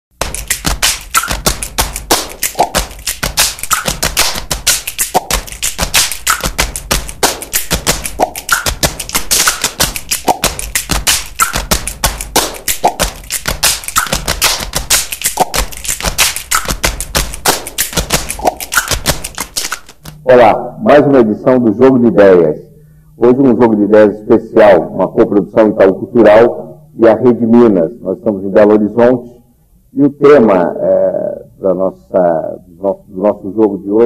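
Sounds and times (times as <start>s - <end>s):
percussive theme music: 0.1s - 21.1s.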